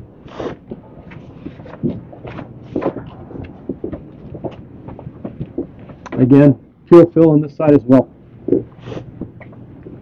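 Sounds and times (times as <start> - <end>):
footsteps on wooden deck: 0.6 - 6.3.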